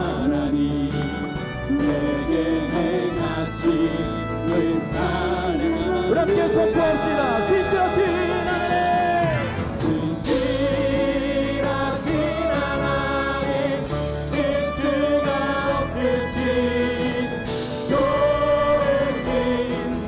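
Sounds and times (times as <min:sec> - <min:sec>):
acoustic guitar and band: 0:00.0 - 0:20.0
group singing a slow praise song: 0:00.0 - 0:20.0.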